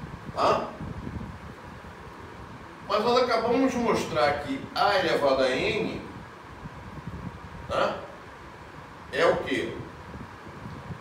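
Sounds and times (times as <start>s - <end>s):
low room hum: 0.0s - 11.0s
man's sharp vocal noise: 0.3s - 0.8s.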